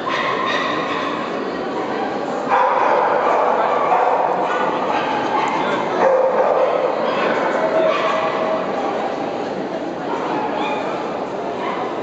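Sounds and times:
dogs barking and yipping: 0.0s - 1.2s, 2.5s - 8.4s
people talking: 0.0s - 12.0s.

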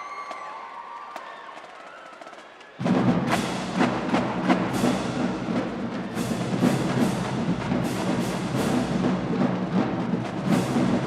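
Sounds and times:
snare and bass drums: 2.8s - 11.0s.

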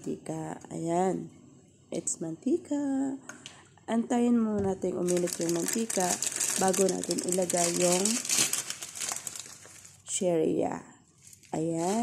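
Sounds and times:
plastic bag crinkling: 5.0s - 10.1s, 11.2s - 12.0s.

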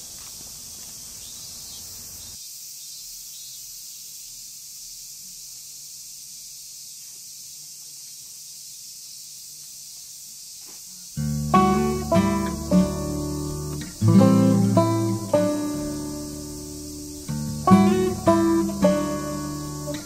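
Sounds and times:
high-pitched insect chorus: 0.0s - 20.0s.

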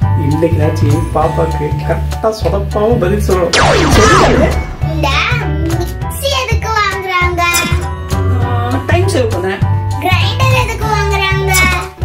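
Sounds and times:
background music: 0.0s - 6.3s
steady bass line: 3.6s - 5.3s.

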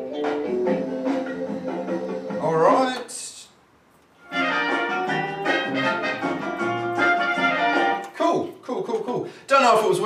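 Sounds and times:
swing orchestral music with brass: 4.2s - 8.0s.

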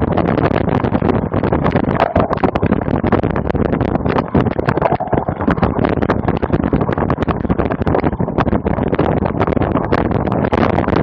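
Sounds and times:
wind and tyre rumble: 0.0s - 11.0s.

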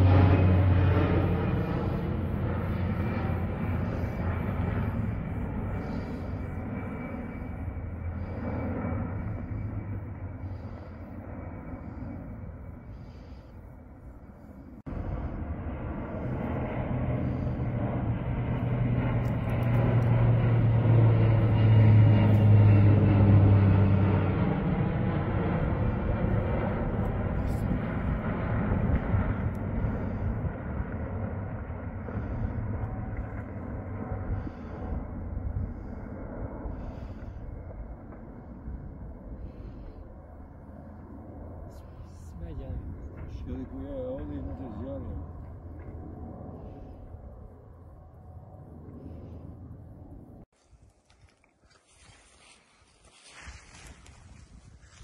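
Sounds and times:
low uneven rumble: 0.0s - 50.5s
aircraft engines droning overhead: 0.0s - 55.0s.

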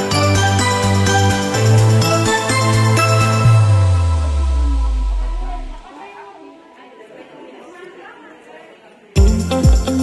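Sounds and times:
indistinct chatter: 4.1s - 9.2s.

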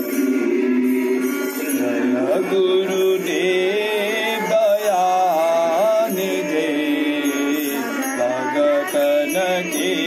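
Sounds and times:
musical accompaniment: 0.0s - 10.0s
person singing devotional song: 0.0s - 10.0s.

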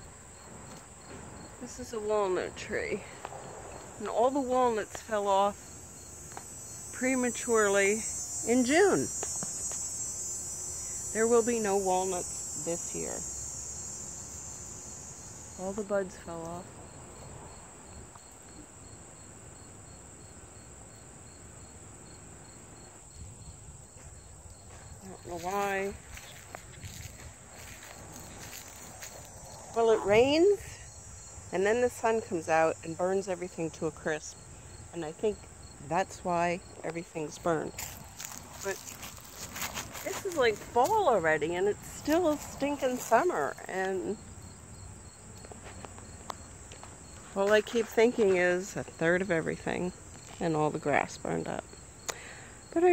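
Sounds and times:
insects high-pitched buzz: 0.0s - 52.9s
low pulsing insect chirp: 0.0s - 52.9s.

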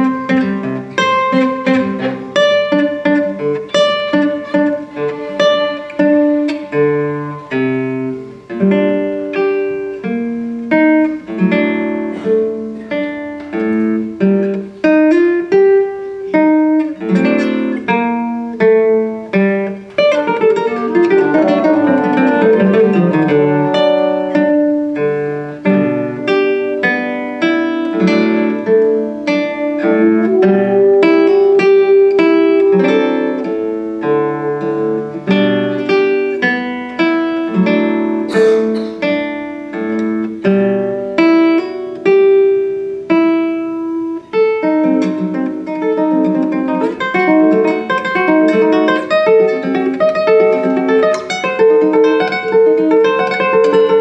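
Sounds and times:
classical guitar playing: 0.0s - 54.0s.

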